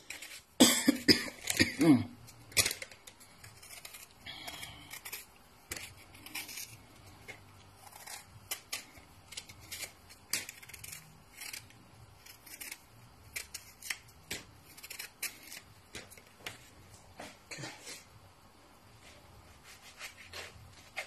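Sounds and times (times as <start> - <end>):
knife cutting and peeling lemon: 1.3 - 16.1.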